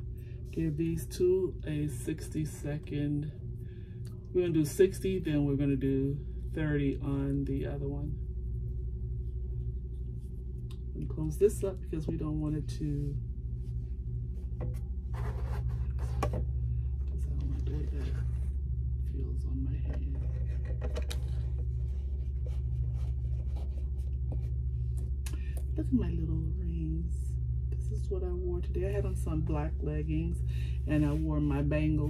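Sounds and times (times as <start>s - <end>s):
nail lamp humming: 0.0s - 32.0s.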